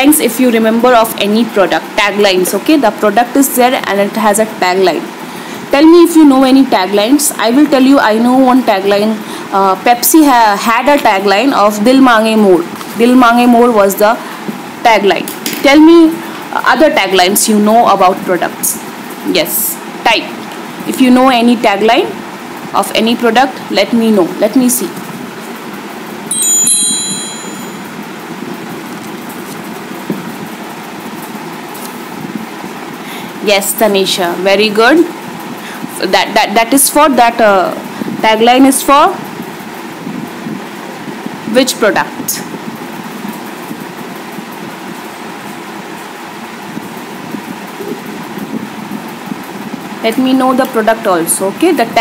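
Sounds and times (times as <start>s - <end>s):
electronic notification chime: 26.3s - 27.9s.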